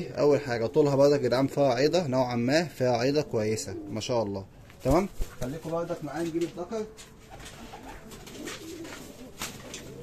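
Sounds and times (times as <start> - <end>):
pigeons cooing softly: 3.0 - 4.6, 7.2 - 10.0.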